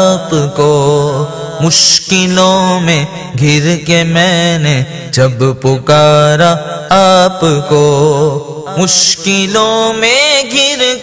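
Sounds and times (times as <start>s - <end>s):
person singing devotional song: 0.0s - 11.0s.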